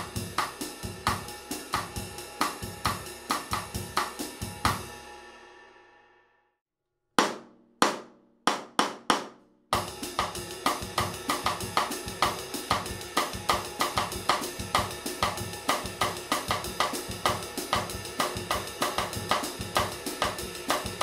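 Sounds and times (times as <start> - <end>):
cross-stick drum groove: 0.0 - 5.0, 7.2 - 21.0
stick pattern on cymbals: 0.0 - 5.6, 9.8 - 21.0
drum count-in strokes: 0.0 - 5.7, 7.2 - 21.0.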